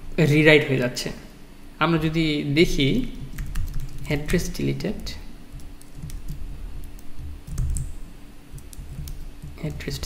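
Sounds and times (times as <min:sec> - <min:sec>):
man talking: 0:00.2 - 0:03.2, 0:04.0 - 0:05.3, 0:09.6 - 0:10.0
computer keyboard typing: 0:03.1 - 0:10.0.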